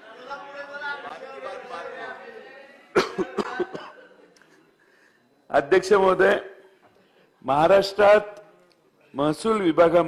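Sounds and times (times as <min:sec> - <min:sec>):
man coughing: 0:02.9 - 0:04.1.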